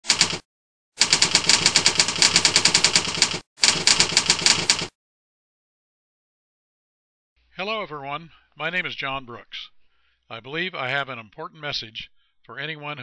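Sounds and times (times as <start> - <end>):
keyboard typing clicks: 1.0 - 4.9.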